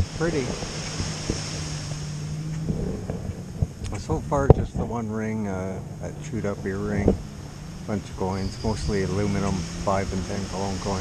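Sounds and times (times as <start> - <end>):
distant jet ski engine drone: 0.0 - 11.0
wind buffeting microphone: 0.0 - 11.0.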